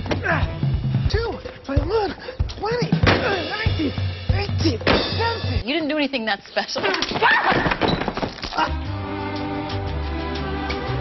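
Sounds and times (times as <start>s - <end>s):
background music: 0.0s - 6.3s, 8.4s - 11.0s.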